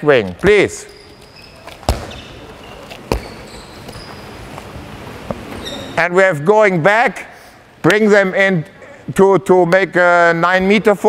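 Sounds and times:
faint short squeaks: 0.8s - 4.4s, 5.5s - 6.0s
ball bouncing on wooden floor: 1.6s - 4.2s.

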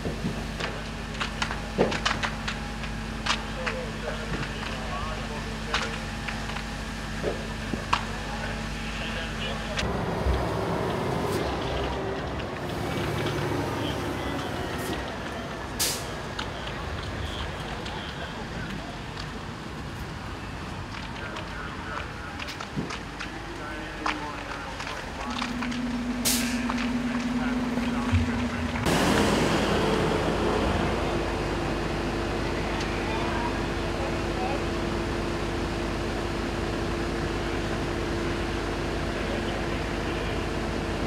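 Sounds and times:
fire truck engine running: 0.0s - 41.0s
indistinct voices: 2.4s - 35.0s.

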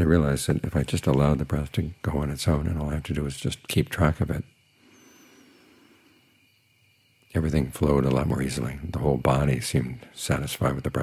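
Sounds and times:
light steady hiss: 0.0s - 11.0s.

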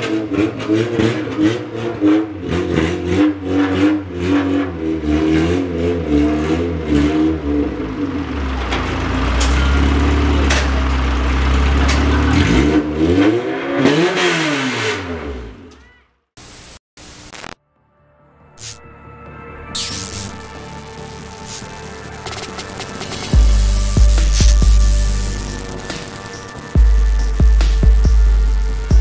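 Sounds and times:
car engine revving: 0.0s - 15.8s, 19.8s - 29.0s.

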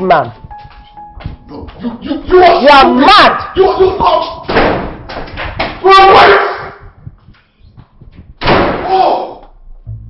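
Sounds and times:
door slamming shut: 4.4s - 5.7s, 8.4s - 9.0s.

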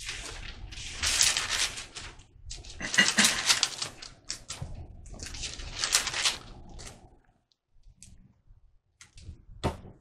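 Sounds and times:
book pages rustling: 0.0s - 7.1s.

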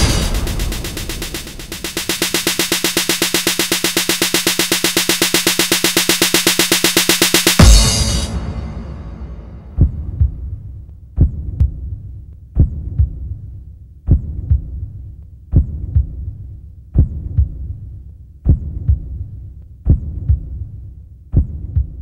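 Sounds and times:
heartbeat thumps: 0.0s - 12.0s, 12.6s - 13.4s, 14.1s - 14.9s, 15.5s - 16.4s, 17.0s - 17.8s, 18.4s - 20.7s, 21.3s - 22.0s.

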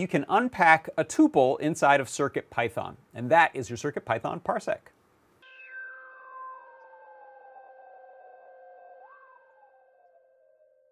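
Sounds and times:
synthesizer drone: 5.4s - 10.2s.

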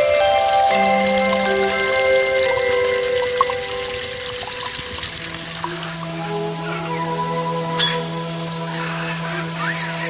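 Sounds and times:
waterfall splashing: 0.0s - 6.3s
background music long notes: 0.0s - 9.4s.

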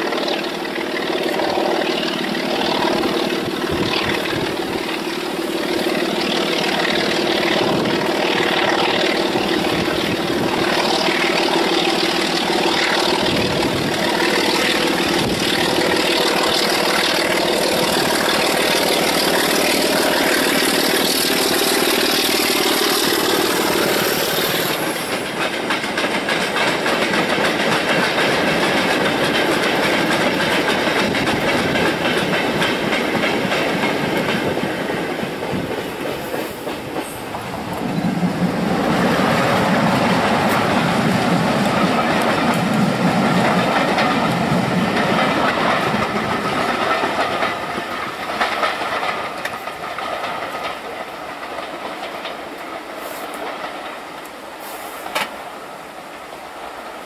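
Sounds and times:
wagons clattering over rail joints: 0.0s - 54.4s
diesel locomotive engine: 0.0s - 57.0s
passenger train passing: 0.0s - 57.0s.

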